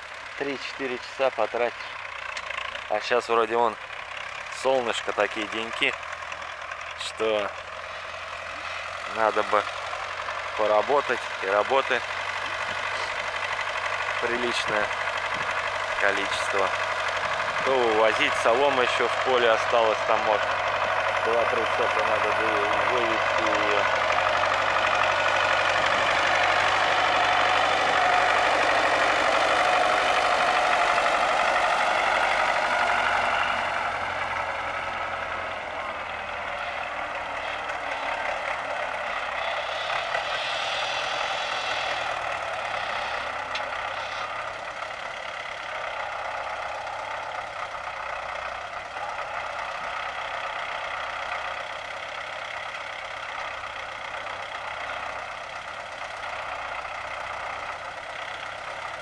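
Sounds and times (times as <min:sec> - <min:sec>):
tractor diesel engine running: 0:00.0 - 0:59.0.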